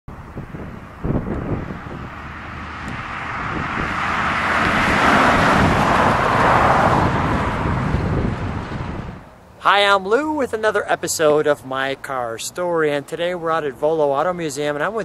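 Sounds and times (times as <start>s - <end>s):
wind thump on microphone: 0.2s - 9.3s
car driving past: 0.6s - 9.2s.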